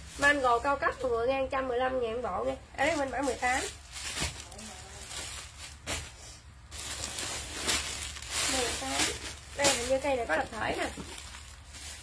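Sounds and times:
clothing and plastic packaging rustling: 0.0s - 12.0s.

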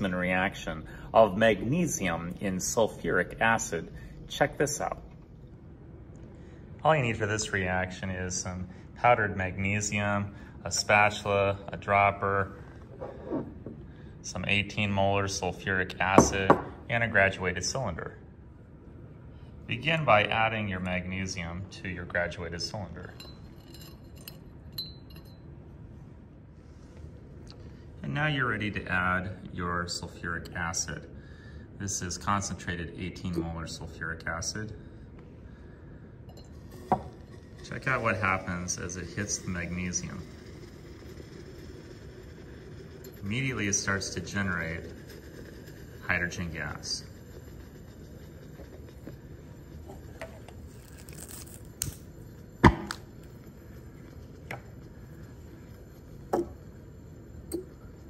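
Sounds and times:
spatula clinking against glass: 23.1s - 25.4s.

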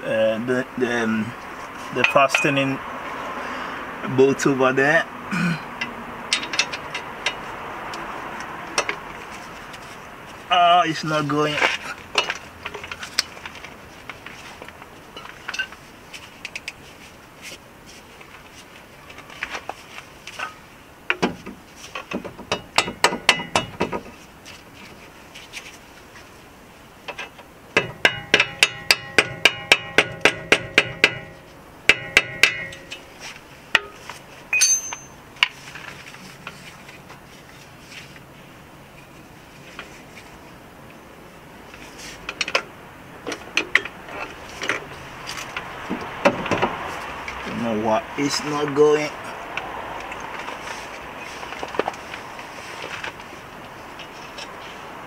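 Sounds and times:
hammer striking steel: 27.8s - 33.0s, 34.5s - 35.2s.

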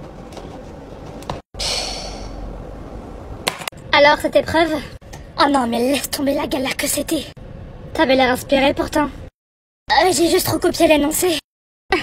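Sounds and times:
woman sighing: 1.6s - 2.4s.

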